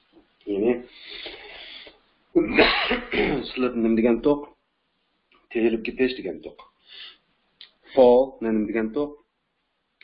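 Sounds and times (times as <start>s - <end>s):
man sneezing: 2.4s - 3.6s.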